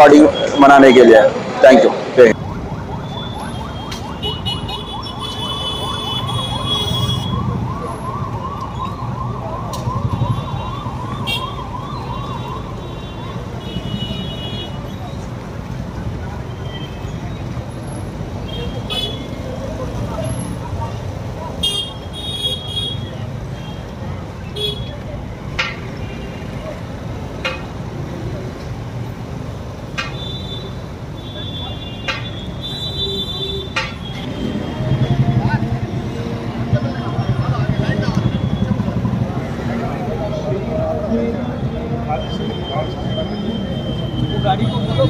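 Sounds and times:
street traffic noise: 0.0s - 45.0s
police siren yelping: 1.6s - 13.6s
voices: 3.1s - 45.0s.

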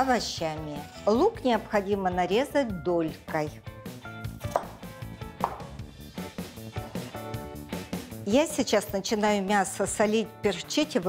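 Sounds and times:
background music: 0.0s - 11.0s
knife chopping on cutting board: 4.4s - 5.8s.

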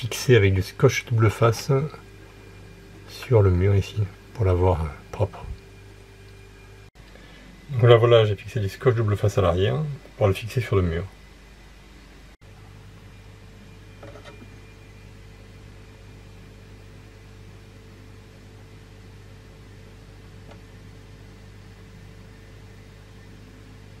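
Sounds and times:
electrical hum with hiss: 0.0s - 24.0s.

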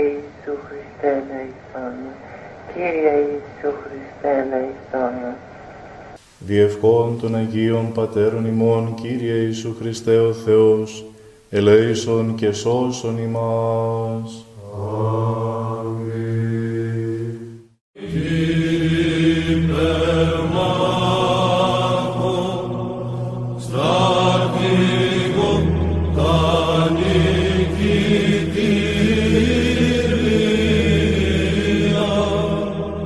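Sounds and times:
low vocal drone: 6.4s - 33.0s
voices chanting slow melody: 6.4s - 33.0s.

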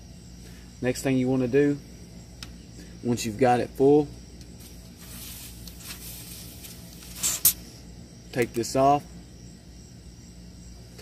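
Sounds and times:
faint high insect chirring: 0.0s - 11.0s.

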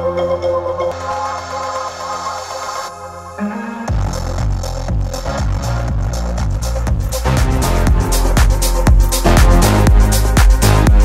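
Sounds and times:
electronic dance music on car stereo: 0.9s - 11.0s.

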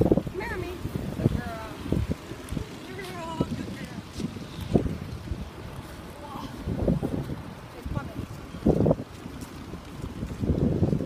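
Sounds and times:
wind rumbling on microphone: 0.0s - 11.0s
footsteps on sand: 1.9s - 11.0s.

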